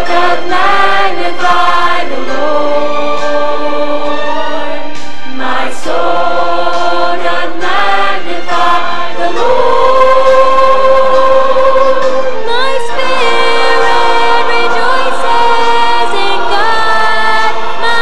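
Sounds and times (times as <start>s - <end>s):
mixed choir singing: 0.0s - 18.0s.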